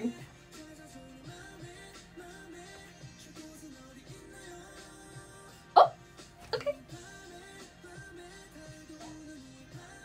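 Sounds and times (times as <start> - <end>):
faint slow pop music: 0.0 - 10.0.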